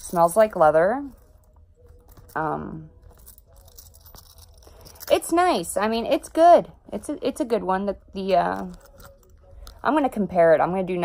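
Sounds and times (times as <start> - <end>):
soft rustling handling noise: 0.0 - 6.2, 8.3 - 10.3.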